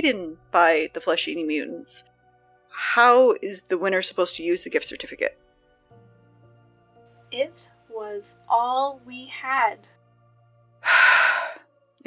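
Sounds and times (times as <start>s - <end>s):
sharp breath: 10.8s - 11.6s.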